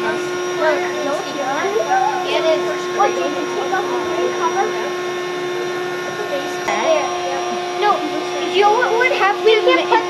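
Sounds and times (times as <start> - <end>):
children's voices: 0.0 - 10.0
electric air pump humming: 0.0 - 10.0.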